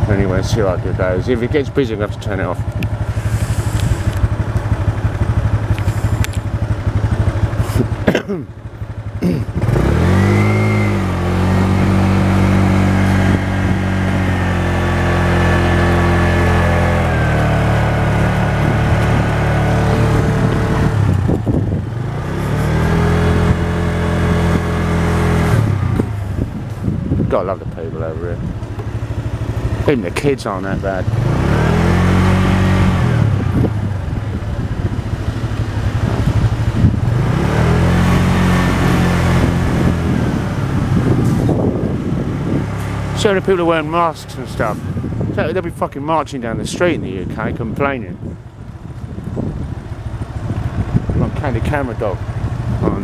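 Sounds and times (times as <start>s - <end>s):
motorbike engine pulling away: 0.0s - 45.6s, 48.1s - 53.0s
wind and road noise: 0.0s - 53.0s.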